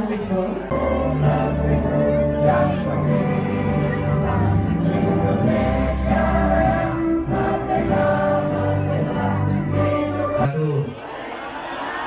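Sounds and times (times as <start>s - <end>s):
musical accompaniment: 0.7s - 10.5s
choir singing long held notes: 0.7s - 12.0s.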